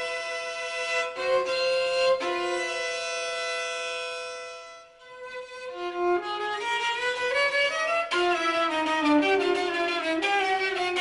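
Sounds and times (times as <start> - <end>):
bowed strings sustained chord: 0.0 - 11.0.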